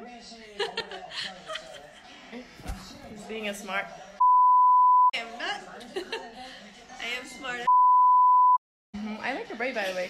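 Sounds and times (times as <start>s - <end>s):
censor bleep tone: 4.2s - 5.1s, 7.7s - 8.6s.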